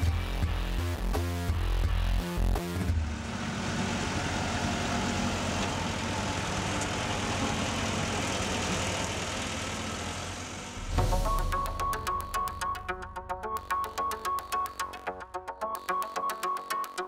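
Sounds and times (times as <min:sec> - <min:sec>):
construction machinery engine running: 0:02.4 - 0:15.2.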